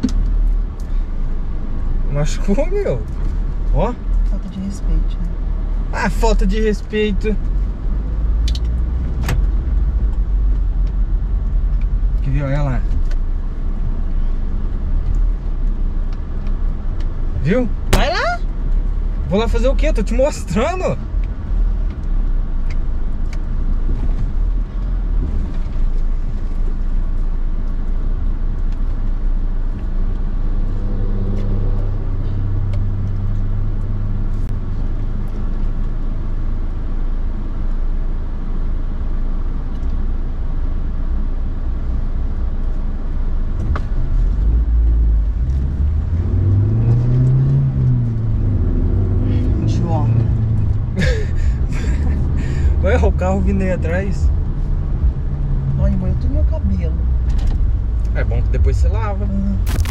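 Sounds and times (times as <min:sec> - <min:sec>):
car engine hum: 0:00.0 - 0:59.9
road rumble: 0:00.0 - 0:59.9.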